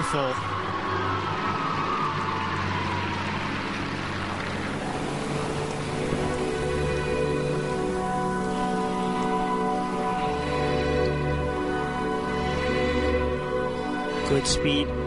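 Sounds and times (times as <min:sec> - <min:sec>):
crowd applauding: 0:00.0 - 0:09.8.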